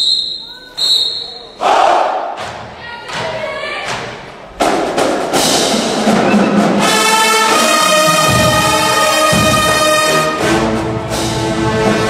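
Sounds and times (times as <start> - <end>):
marching band playing: 3.4 - 12.0.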